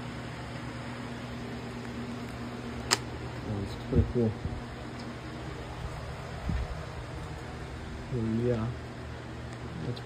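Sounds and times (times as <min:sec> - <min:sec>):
low electrical hum: 0:00.0 - 0:10.0
sharp click: 0:02.8 - 0:03.1.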